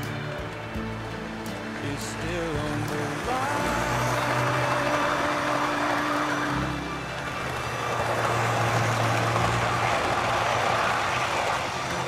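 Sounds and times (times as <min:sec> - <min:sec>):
low motor hum: 0:00.0 - 0:12.0
model train wheels rumbling: 0:00.0 - 0:12.0.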